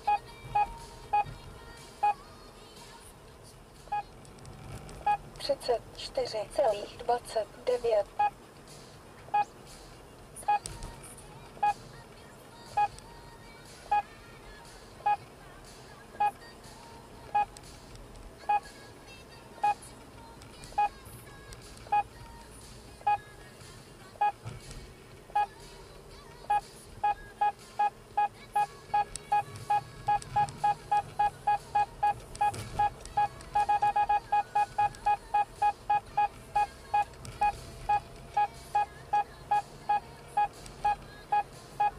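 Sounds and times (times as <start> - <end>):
road and engine noise: 0.0 - 41.9
electronic warning beeps: 5.0 - 5.2, 26.5 - 41.9.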